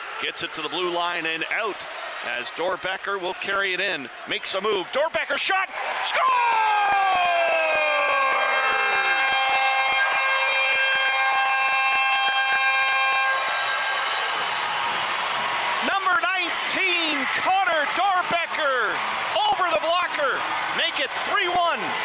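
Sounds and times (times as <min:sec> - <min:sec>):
arena goal horn blast: 0:07.7 - 0:18.7
man's voice: 0:15.8 - 0:22.0.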